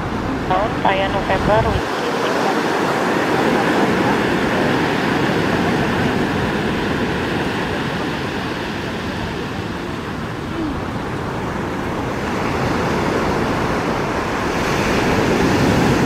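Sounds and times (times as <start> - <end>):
sea surf rushing: 0.0 - 16.0
wind: 0.0 - 16.0.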